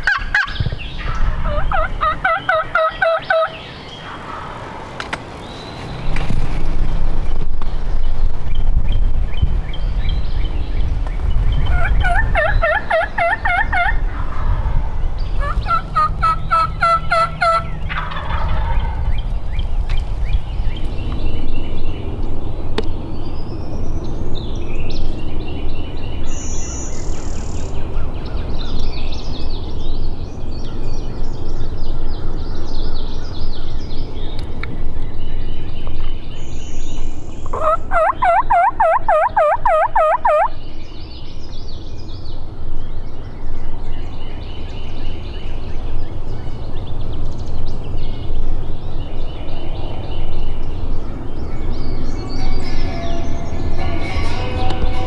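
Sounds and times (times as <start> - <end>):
turkey gobbling: 0.0 - 4.6, 11.7 - 14.7, 15.4 - 19.0, 37.5 - 40.5
songbirds calling: 0.0 - 55.0.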